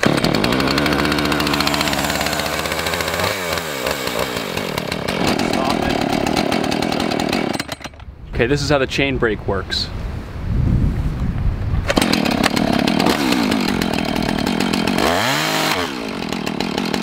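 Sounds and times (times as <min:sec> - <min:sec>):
chainsaw engine running: 0:00.0 - 0:08.0, 0:11.8 - 0:17.0.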